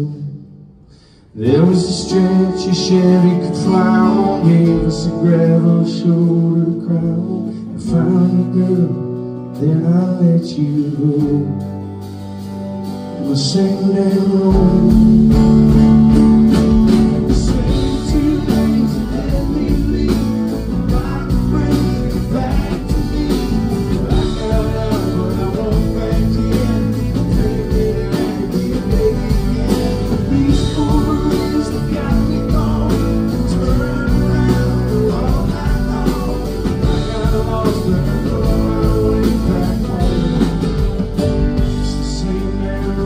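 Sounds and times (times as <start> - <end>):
man singing: 0.0 - 0.6, 1.2 - 12.0, 13.0 - 43.0
acoustic guitar strumming: 0.9 - 43.0.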